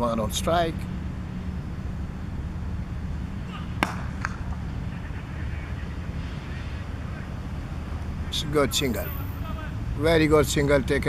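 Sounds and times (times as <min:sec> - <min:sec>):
cricket bat striking ball: 0:03.5 - 0:04.7.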